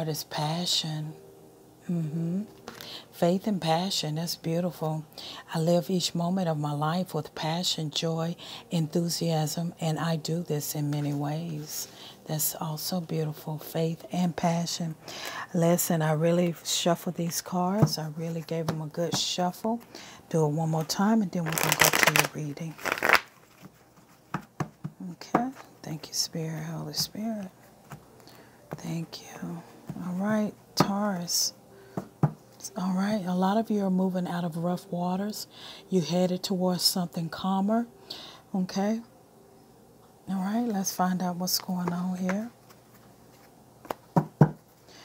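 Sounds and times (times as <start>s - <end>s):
cards being riffled: 21.4s - 24.5s.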